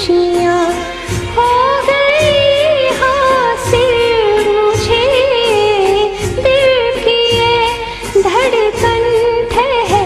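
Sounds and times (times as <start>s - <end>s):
instrumental accompaniment: 0.0s - 10.0s
woman singing: 0.0s - 10.0s.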